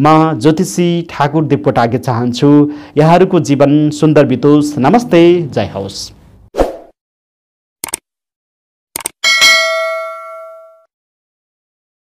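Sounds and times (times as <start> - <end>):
bright bell ding: 9.2 - 10.9.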